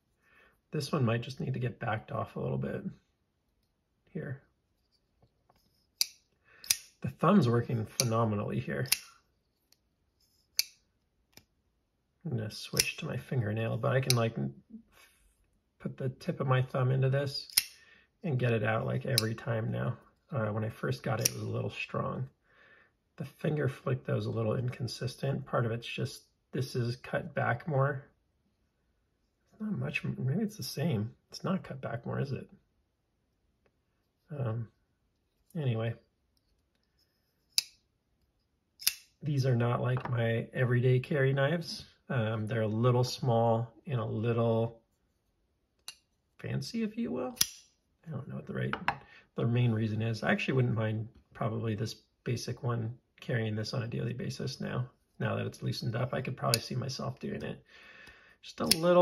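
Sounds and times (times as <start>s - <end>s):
folding knife blade clicking: 6.0s - 6.9s, 17.5s - 17.7s, 38.8s - 39.1s, 47.4s - 47.7s, 58.6s - 58.9s.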